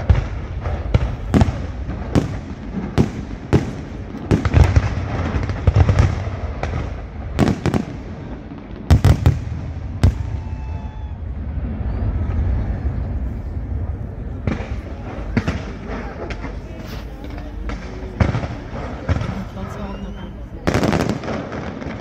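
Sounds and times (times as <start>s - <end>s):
fireworks bursting with sharp bangs: 0.0s - 22.0s
steady low rumble: 11.1s - 19.7s.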